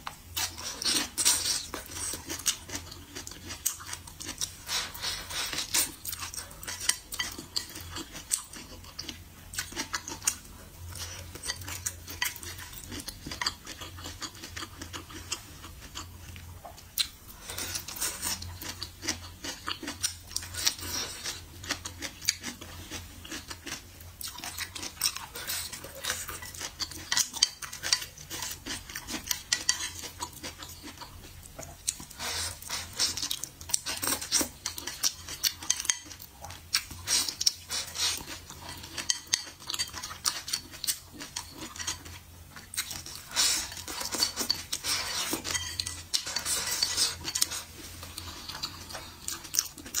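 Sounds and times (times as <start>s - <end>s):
chewing: 0.4s - 50.0s.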